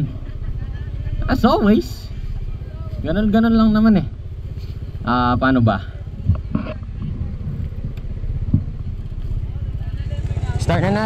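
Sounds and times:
motorcycle engine idling: 0.0s - 11.0s
loud engine knock: 7.8s - 9.0s.

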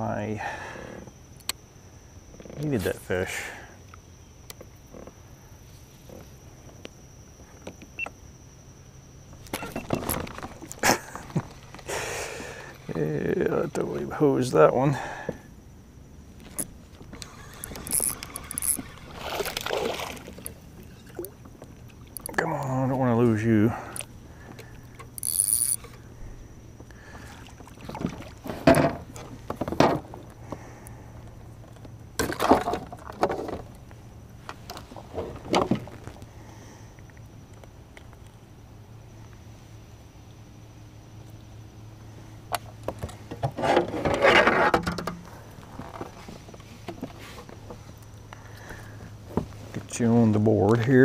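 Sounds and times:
knocks and taps aboard kayak: 27.6s - 30.6s, 45.8s - 47.8s.

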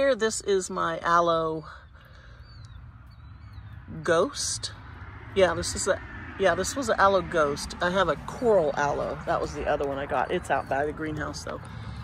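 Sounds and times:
faint bird chirps: 1.6s - 4.0s.

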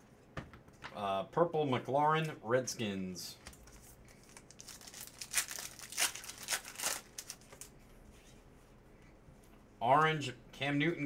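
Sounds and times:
foil wrapper tearing and crinkling: 4.2s - 7.7s.

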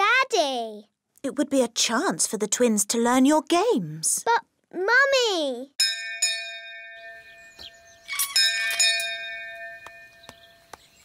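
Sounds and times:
doorbell ringing: 5.8s - 10.8s.

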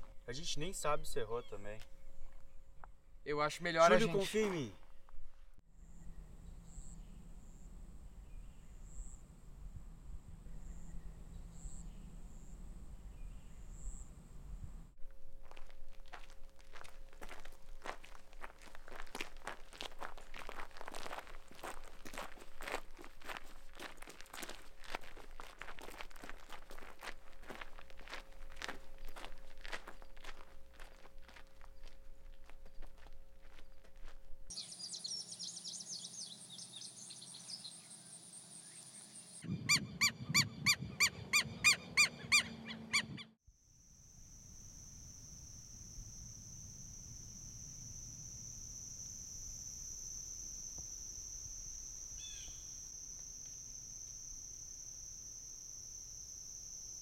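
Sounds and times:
crickets chirping: 5.8s - 39.4s, 43.5s - 57.0s
footsteps on gravel: 15.2s - 34.5s
high insect buzz: 43.5s - 57.0s.

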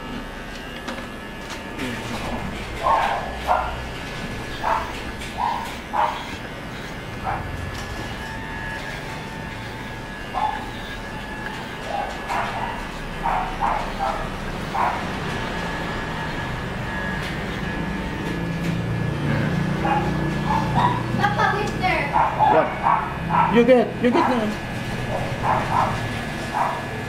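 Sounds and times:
electric hair clipper humming: 0.0s - 27.0s.

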